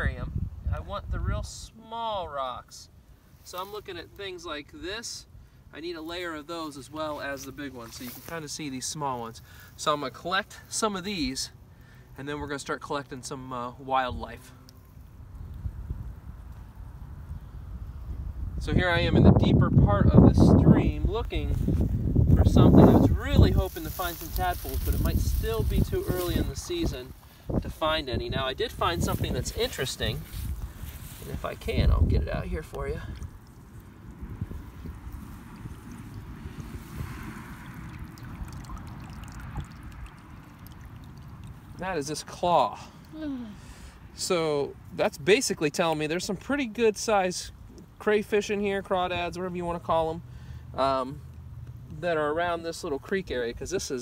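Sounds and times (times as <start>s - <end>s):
low outdoor rumble: 4.1s - 45.4s
stream water splashing: 33.1s - 42.7s.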